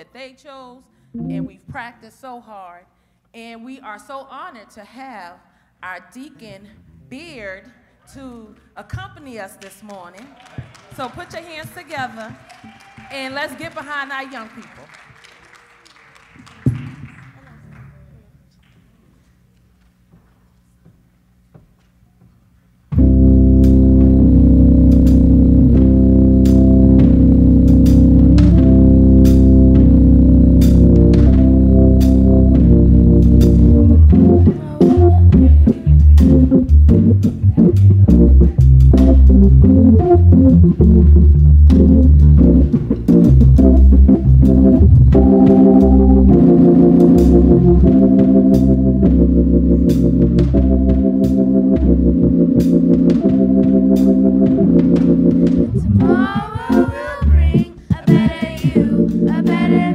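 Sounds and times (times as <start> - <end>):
church organ playing chords: 1.2 - 1.7, 22.9 - 59.9.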